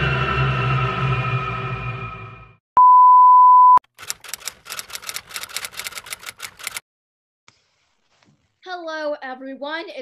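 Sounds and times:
typewriter key clacks: 4.0s - 6.8s.

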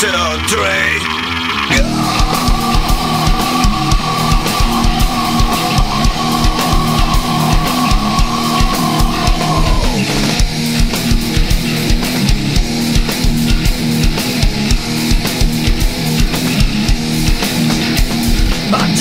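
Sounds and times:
distorted electric guitars: 0.0s - 19.0s
drum kit: 1.7s - 19.0s.

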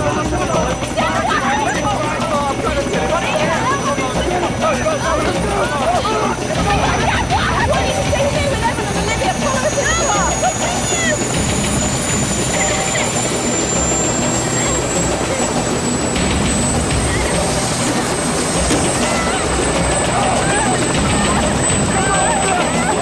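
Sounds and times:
engine droning: 0.0s - 23.0s.

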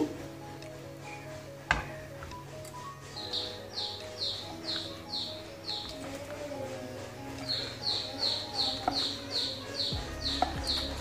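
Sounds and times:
bird chirping: 0.0s - 11.0s
soft background music: 0.0s - 11.0s.

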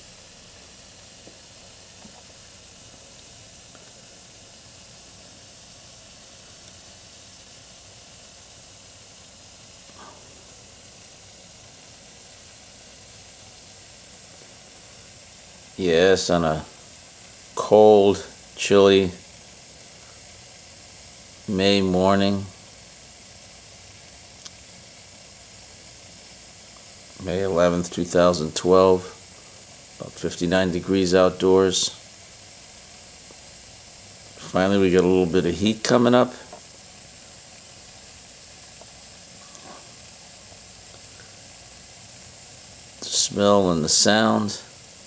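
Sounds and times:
steam radiator hissing: 0.0s - 45.0s.

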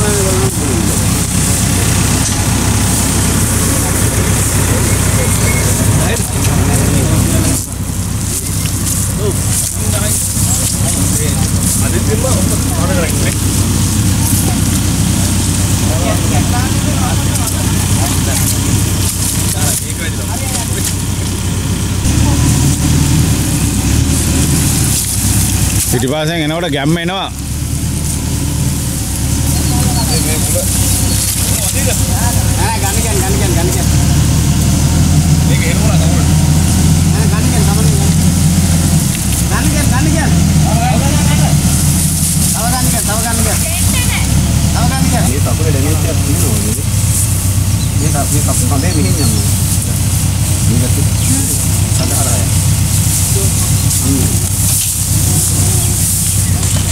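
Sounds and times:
men calling out: 0.0s - 7.9s, 42.4s - 56.9s
diesel engine running: 0.0s - 56.9s.

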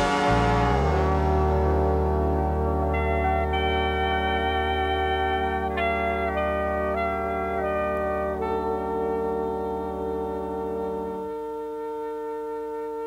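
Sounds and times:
steady low bass note: 0.0s - 12.2s
big band jazz sustained chords: 0.0s - 13.0s.

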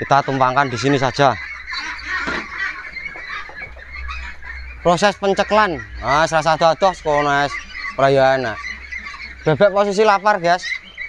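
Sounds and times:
ducks quacking: 0.0s - 11.0s.

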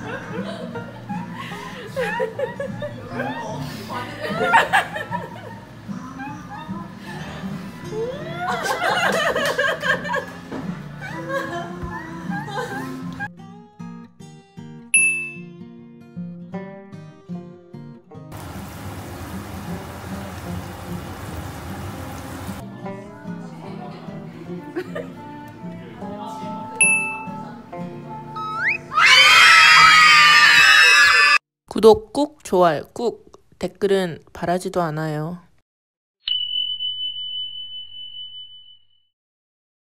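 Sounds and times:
guitar music: 13.1s - 29.0s
high bell-like ding: 15.0s - 15.5s, 26.8s - 27.3s, 36.2s - 39.1s
pancakes sizzling in frying pans: 18.4s - 22.6s.

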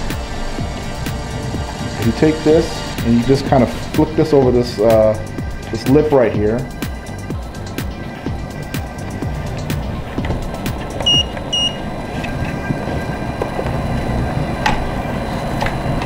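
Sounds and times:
background music: 0.0s - 16.0s
short electronic beeps: 11.0s - 11.8s.

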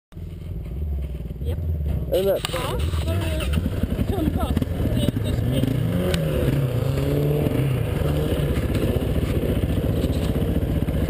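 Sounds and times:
quad engine idling: 0.2s - 11.0s.

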